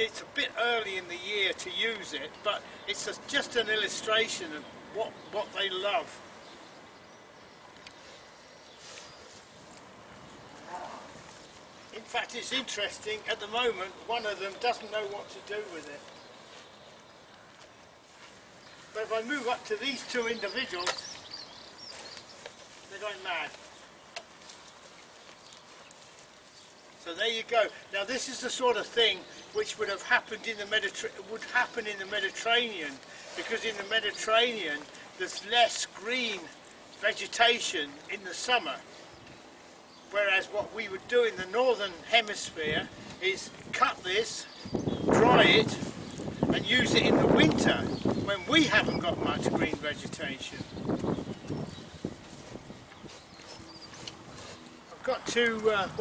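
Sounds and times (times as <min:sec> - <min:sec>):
rustling of leaves and hay: 0:00.0 - 0:56.0
cows munching leaves: 0:18.1 - 0:28.6, 0:52.1 - 0:56.0.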